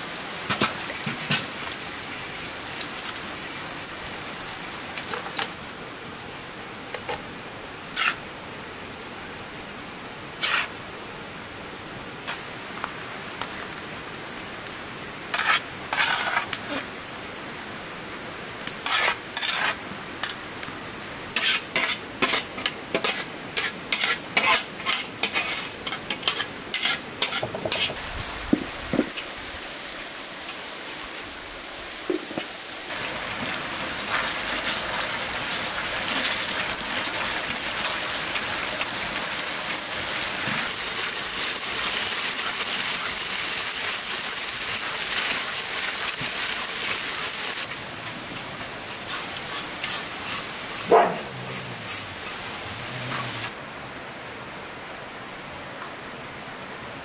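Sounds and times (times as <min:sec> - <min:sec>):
sauce sizzling: 0:21.2 - 0:53.5.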